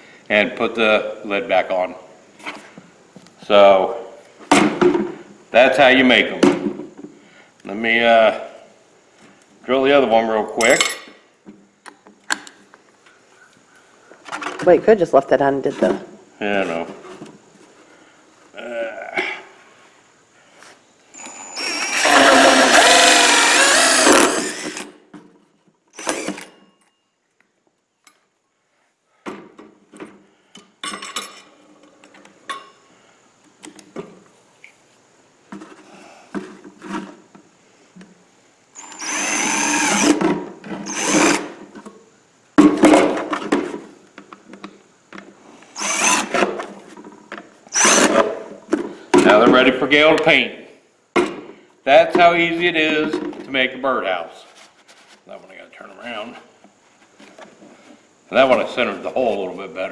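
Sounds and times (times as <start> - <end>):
drill cutting through plastic: 21.2 - 25.0, 26.0 - 26.5, 38.8 - 40.2, 40.8 - 41.6, 45.7 - 46.5, 47.7 - 48.2.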